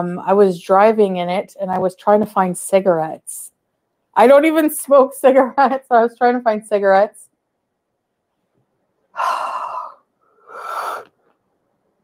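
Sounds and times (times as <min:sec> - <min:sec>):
woman gasping: 0:09.1 - 0:11.2.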